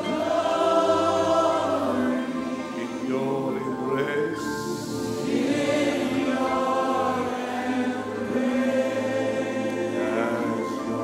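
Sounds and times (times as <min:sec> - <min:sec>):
voices singing in chorus: 0:00.0 - 0:11.0.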